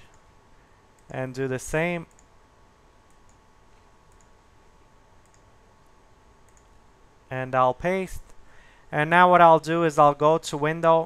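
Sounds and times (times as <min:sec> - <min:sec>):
faint steady hum: 0:00.0 - 0:11.0
low background hiss: 0:00.0 - 0:11.0
computer mouse clicks: 0:02.1 - 0:02.3, 0:03.1 - 0:04.4, 0:05.2 - 0:05.5, 0:06.4 - 0:06.8.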